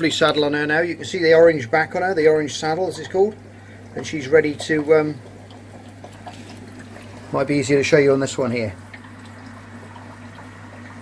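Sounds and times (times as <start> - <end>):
aquarium equipment humming: 0.0 - 11.0.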